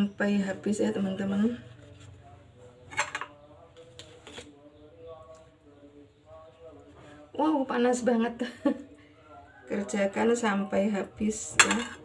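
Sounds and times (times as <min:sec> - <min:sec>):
metal spoon clinking on pot: 0:11.6 - 0:12.0.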